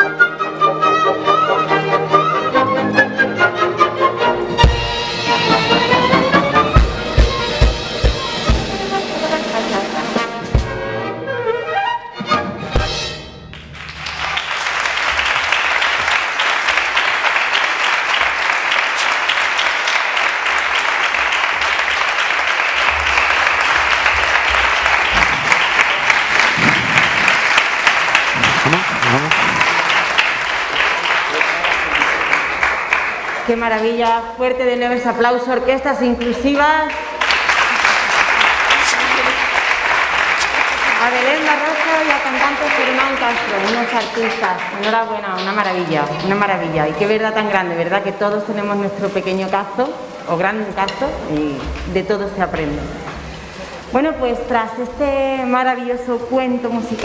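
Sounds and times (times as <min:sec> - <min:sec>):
orchestra of strings and brass: 0:00.0 - 0:14.9
audience applauding: 0:13.5 - 0:33.8, 0:36.2 - 0:47.3.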